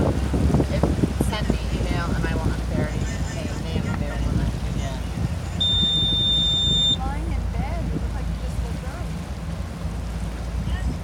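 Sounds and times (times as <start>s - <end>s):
motor boat engine rumbling: 0.0s - 11.0s
high electronic beep: 5.6s - 7.0s.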